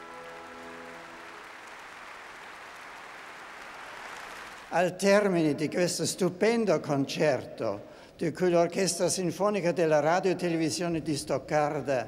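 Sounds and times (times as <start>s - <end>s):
orchestra held chord: 0.0s - 2.2s
audience applause: 0.0s - 4.7s.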